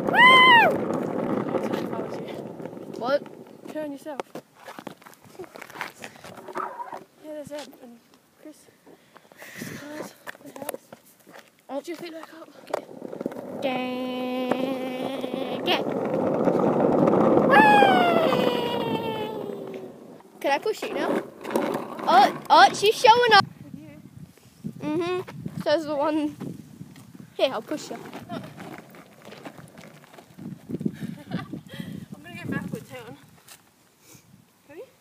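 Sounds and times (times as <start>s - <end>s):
small wheels rolling over asphalt: 0.0s - 7.9s, 9.8s - 23.4s, 26.9s - 33.8s
drawn-out voice falling in pitch: 17.5s - 19.9s.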